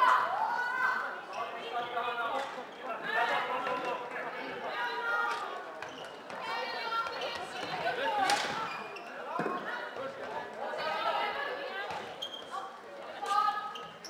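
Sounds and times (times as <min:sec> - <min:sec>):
people talking and calling out: 0:00.0 - 0:14.0.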